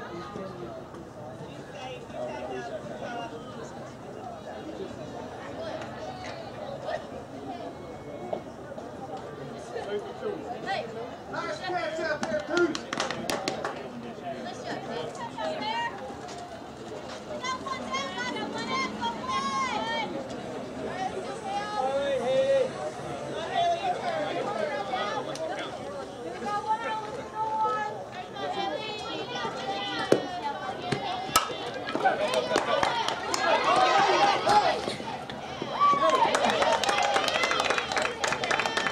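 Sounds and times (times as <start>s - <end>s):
people calling out and chattering: 0.0s - 38.9s
softball bat cracking ball: 30.9s - 32.1s.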